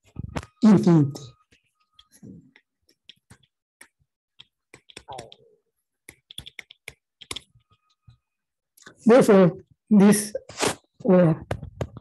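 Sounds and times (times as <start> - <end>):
stylus tapping on tablet: 1.4 - 8.2.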